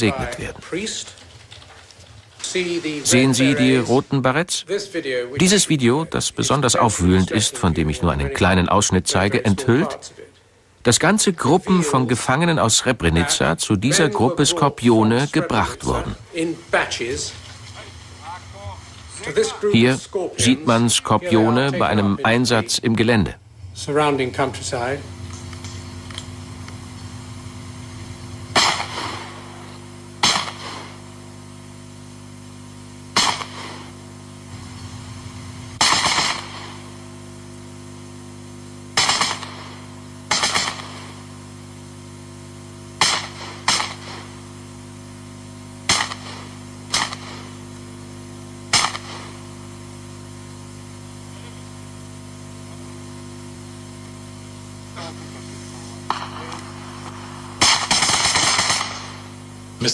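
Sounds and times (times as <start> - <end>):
steady low hum: 0.0 - 59.9
gunshots: 28.5 - 29.6, 30.2 - 31.0, 33.1 - 34.0, 35.8 - 37.0, 39.0 - 41.2, 43.0 - 44.4, 45.8 - 47.6, 48.7 - 49.4, 56.0 - 59.4.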